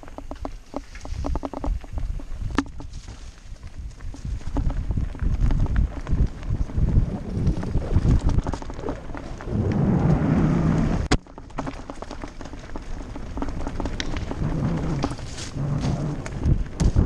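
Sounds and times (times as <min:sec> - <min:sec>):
bike rattling: 0:00.0 - 0:17.0
tyres crunching over loose stones: 0:00.0 - 0:17.0
wind buffeting microphone: 0:01.0 - 0:11.2, 0:12.7 - 0:17.0.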